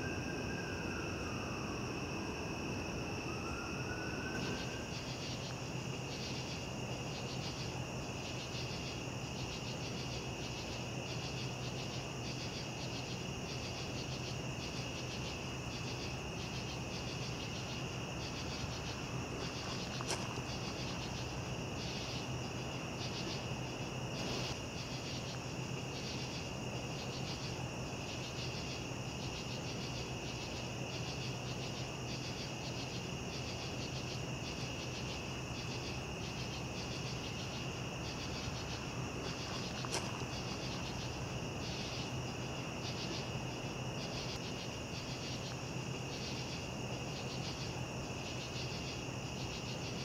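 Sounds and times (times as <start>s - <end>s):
cricket trill: 0.0s - 50.0s.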